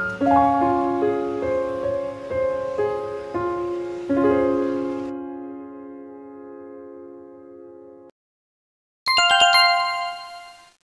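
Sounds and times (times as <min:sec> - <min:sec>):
bright chime jingle: 0:09.1 - 0:10.8.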